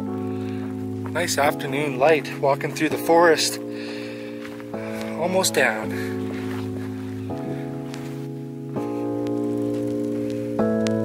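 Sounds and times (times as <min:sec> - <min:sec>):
background music held chords: 0:00.0 - 0:11.0.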